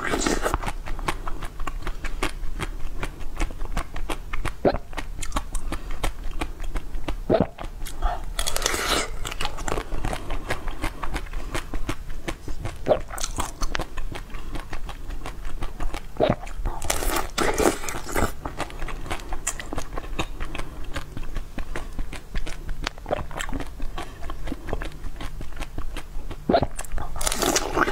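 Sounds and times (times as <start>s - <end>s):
person chewing crunchy food: 0.0s - 27.9s.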